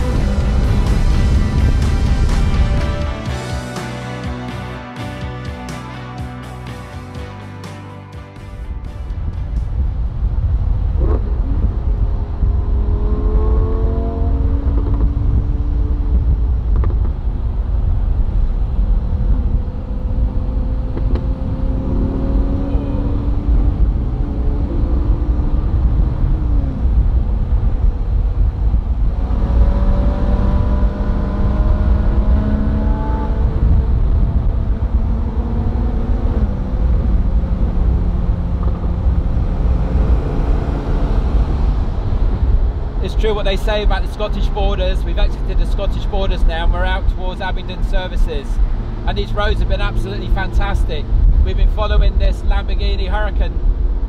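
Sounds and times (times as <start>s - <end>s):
sports car engine revving: 0.0s - 3.8s, 10.8s - 17.2s, 18.2s - 52.2s
road and wind noise: 0.0s - 54.0s.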